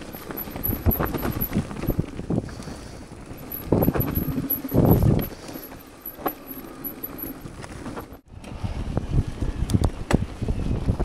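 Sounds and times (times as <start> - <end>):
bike rattling over dirt trail: 0.0 - 8.2
bike rumbles: 0.0 - 9.4.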